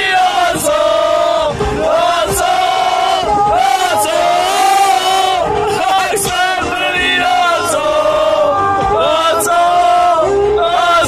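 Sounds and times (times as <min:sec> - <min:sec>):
men chanting in long notes: 0:00.0 - 0:11.0.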